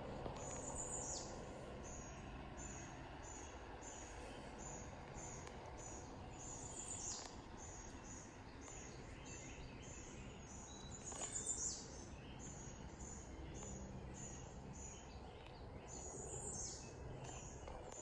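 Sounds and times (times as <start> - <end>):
low steady hiss: 0.0 - 18.0.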